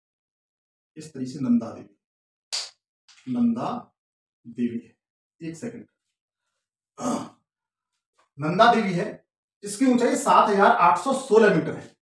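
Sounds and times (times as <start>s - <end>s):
man sighing: 7.0s - 7.4s.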